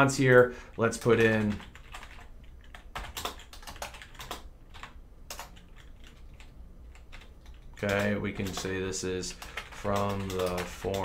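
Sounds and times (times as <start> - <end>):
computer keyboard typing: 0.0 - 11.0.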